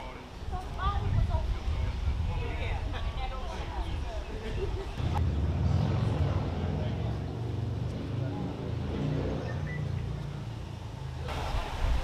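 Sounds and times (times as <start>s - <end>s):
motor vehicle engine rumbling: 3.7s - 11.4s.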